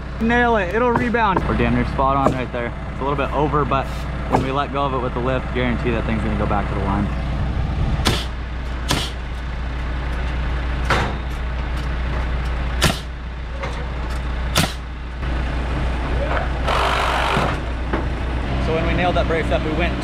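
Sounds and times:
diesel engine idling: 0.0 - 20.0
pneumatic nailer shots: 8.0 - 9.2, 12.8 - 13.2, 14.5 - 14.9, 16.6 - 17.6.

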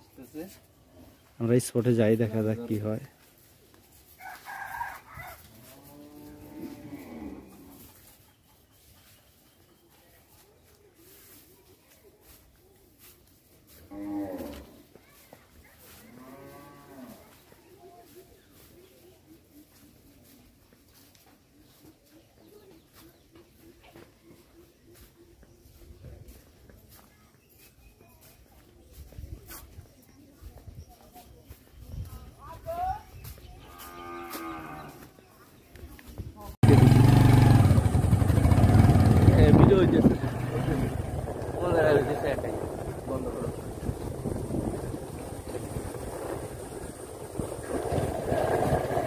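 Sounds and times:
motorcycle engine running: 36.6 - 49.0.

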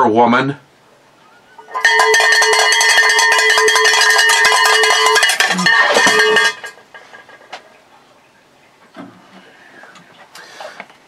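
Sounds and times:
cowbell rung rapidly: 1.6 - 6.8.

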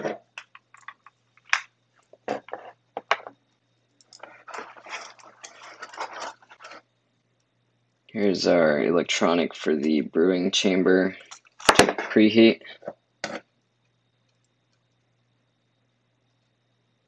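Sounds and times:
plastic wrapping crinkling: 4.2 - 6.8.

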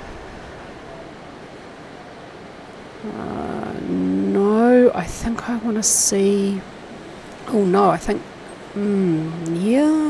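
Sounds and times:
steady background noise: 0.0 - 10.0
woman humming: 8.8 - 10.0.

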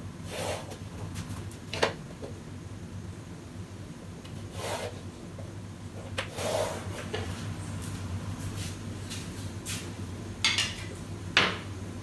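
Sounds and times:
steady low hum: 0.0 - 12.0
chalk scraping on blackboard: 4.5 - 5.0.

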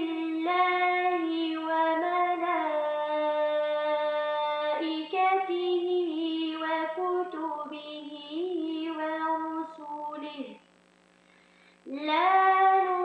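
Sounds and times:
woman reciting melodically: 0.0 - 10.7, 11.8 - 13.0.

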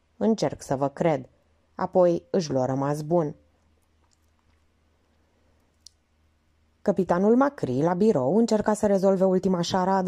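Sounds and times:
woman reading aloud: 0.2 - 3.4, 6.9 - 10.0.

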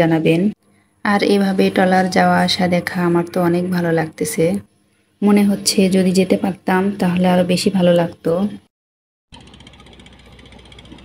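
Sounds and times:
boat engine knocking: 9.3 - 11.0.

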